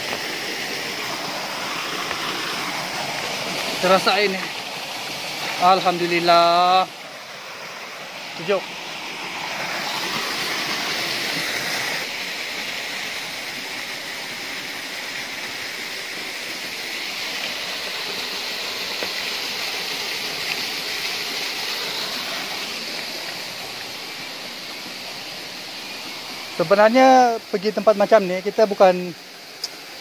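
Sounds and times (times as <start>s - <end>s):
waterfall rushing into pool: 0.0s - 30.0s.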